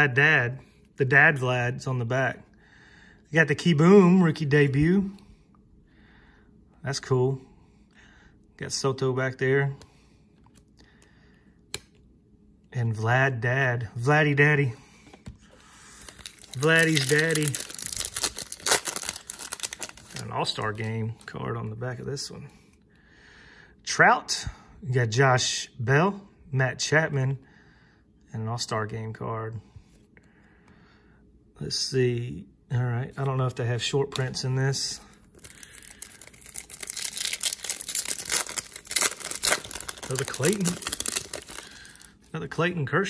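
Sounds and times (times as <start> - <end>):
foil wrapper crinkling: 15.5 - 21.4, 35.1 - 42.3.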